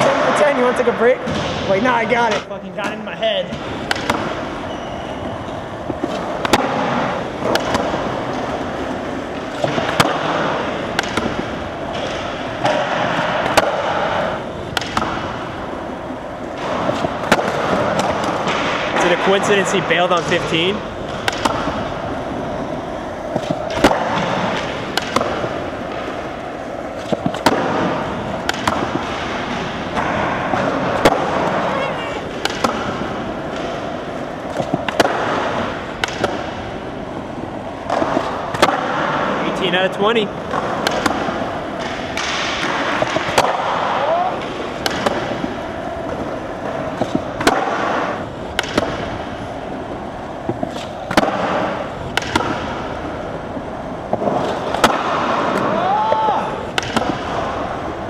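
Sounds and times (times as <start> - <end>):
skateboard wheels rolling on concrete: 0.0 - 58.0
skateboard landing slaps: 2.3 - 4.6, 5.8 - 15.8, 16.4 - 19.1, 21.0 - 37.2, 37.8 - 39.4, 40.4 - 58.0
skateboard popping: 2.3 - 39.4, 40.2 - 58.0.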